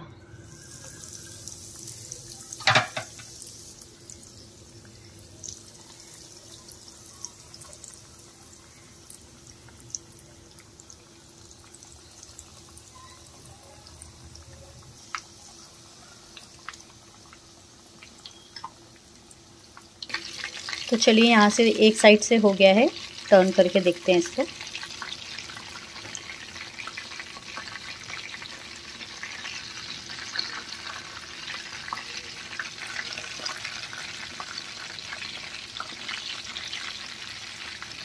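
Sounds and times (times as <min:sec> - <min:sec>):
food frying in hot oil: 0:00.3 - 0:38.0.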